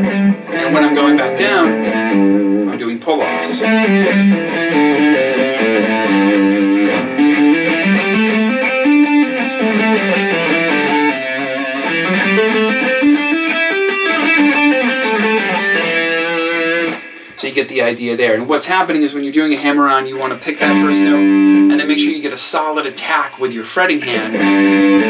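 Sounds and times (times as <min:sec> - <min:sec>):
clean electric guitar scale: 0:00.1 - 0:17.3, 0:19.7 - 0:22.2.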